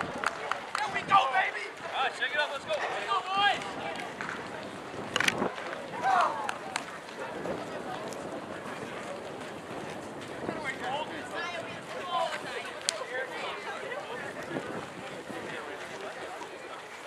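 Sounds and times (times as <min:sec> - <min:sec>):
sharp claps: 0:00.0 - 0:01.0
players and spectators shouting: 0:00.0 - 0:04.9, 0:05.6 - 0:08.5
outdoor murmur: 0:00.0 - 0:17.0.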